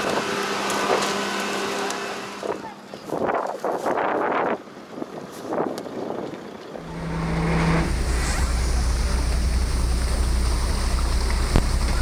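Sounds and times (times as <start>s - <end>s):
motorboat engine rumble: 0.0s - 12.0s.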